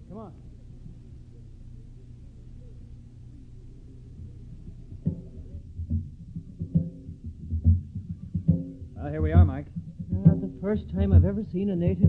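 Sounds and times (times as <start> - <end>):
low steady hum: 0.0 - 12.0
talking drums striking: 4.6 - 12.0.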